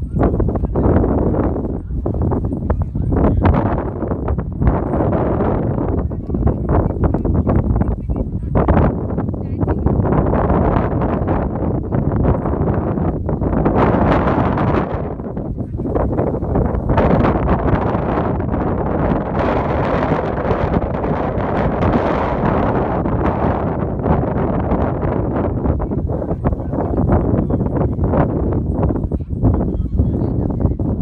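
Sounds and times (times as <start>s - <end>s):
wind buffeting microphone: 0.0s - 31.0s.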